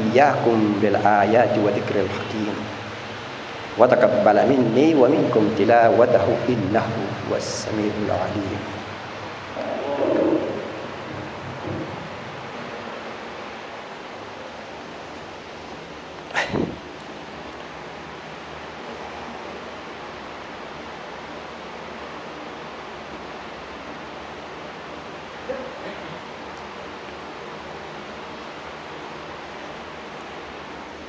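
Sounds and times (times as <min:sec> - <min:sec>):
background hiss: 0:00.0 - 0:31.0.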